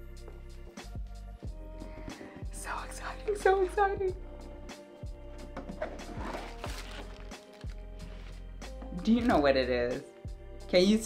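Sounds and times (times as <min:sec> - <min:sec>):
background music: 0:00.0 - 0:11.0
cardboard box rustling: 0:05.8 - 0:08.4.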